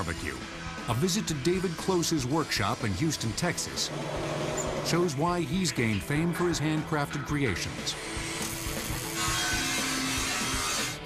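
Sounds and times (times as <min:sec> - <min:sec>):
background music: 0:00.0 - 0:11.0
power tool grinding metal: 0:01.1 - 0:11.0.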